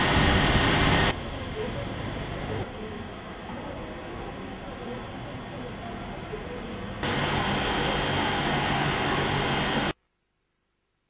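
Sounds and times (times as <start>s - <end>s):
loud rushing noise: 0.0s - 1.4s, 7.0s - 10.0s.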